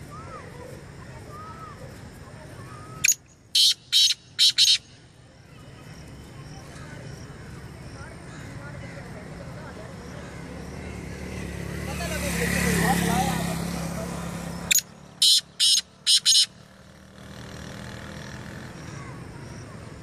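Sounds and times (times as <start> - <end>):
motorcycle passing: 0.0 - 20.0
francolin call: 2.7 - 5.2, 14.7 - 16.7.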